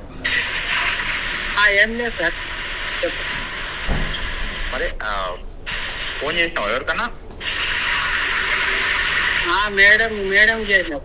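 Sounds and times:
phone speaker hiss: 0.1 - 11.0.

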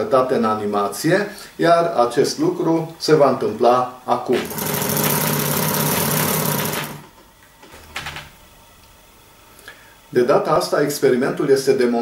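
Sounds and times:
hand-cranked alternator whirring: 4.4 - 7.1.

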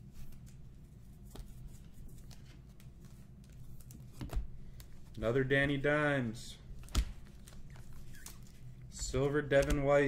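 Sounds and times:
trading cards flipped by hand: 0.2 - 5.2, 6.8 - 9.8.

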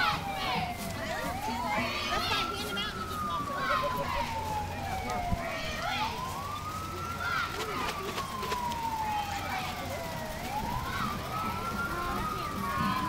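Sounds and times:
vehicle siren wailing: 0.0 - 13.0.

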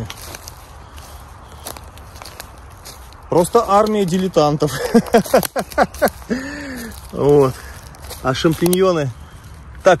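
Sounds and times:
footsteps through forest litter: 0.0 - 10.0.

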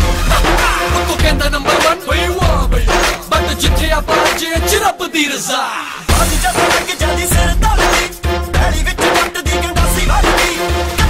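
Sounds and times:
music with pulsing bass beat: 0.0 - 5.0, 6.1 - 11.0.

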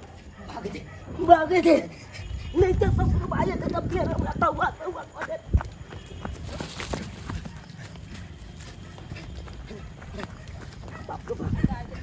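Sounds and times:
running footsteps on dirt path: 0.0 - 12.0.

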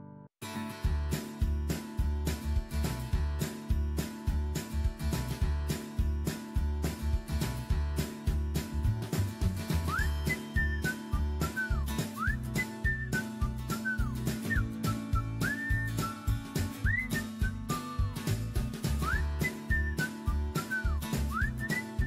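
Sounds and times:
beat and bass: 0.7 - 22.0
whistled melody: 1.6 - 22.0.

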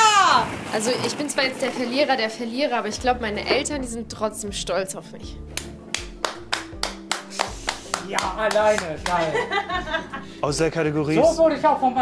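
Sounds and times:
person clapping hands: 5.5 - 9.3.

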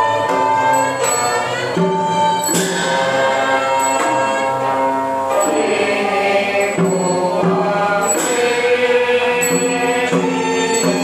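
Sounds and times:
struck percussion ringing: 0.0 - 11.0
group chanting in unison: 2.5 - 11.0.

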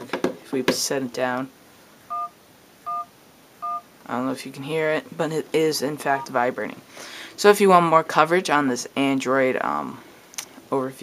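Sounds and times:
two-tone keypad beeps: 2.1 - 2.3, 2.9 - 3.8.

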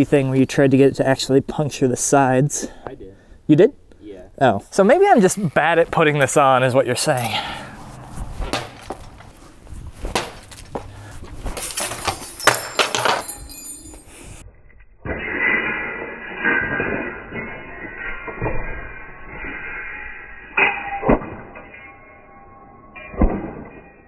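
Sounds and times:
ball hitting cabinet door: 8.5 - 8.9
door clattering off hooks: 11.6 - 14.1.

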